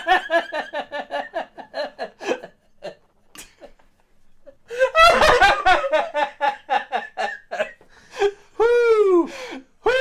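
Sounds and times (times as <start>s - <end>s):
laughter: 0.0s - 8.4s
man's high vocal wail: 8.6s - 10.0s.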